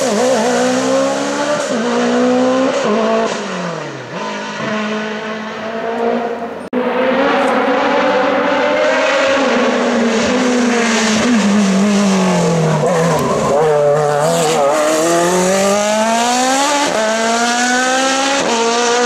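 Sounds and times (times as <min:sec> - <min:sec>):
racing car engine: 0:00.0 - 0:19.0.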